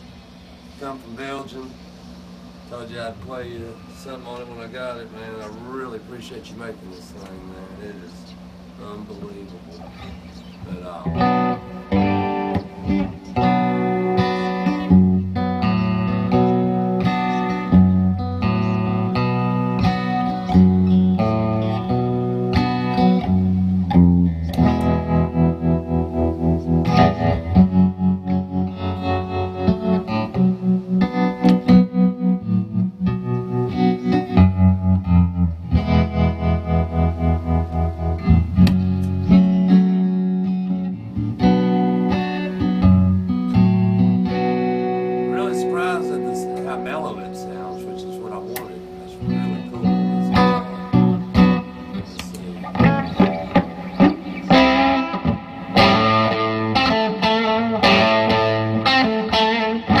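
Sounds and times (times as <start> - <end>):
electric guitar through amplifier: 0.0 - 60.0.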